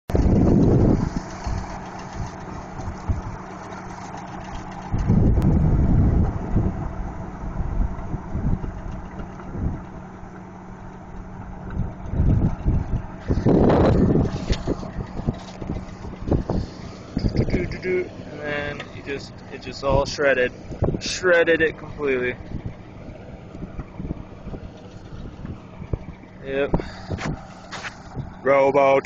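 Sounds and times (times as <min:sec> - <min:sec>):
rotary tiller tilling soil: 0:00.1 - 0:05.5, 0:11.6 - 0:22.2
tractor engine hum: 0:00.1 - 0:29.0.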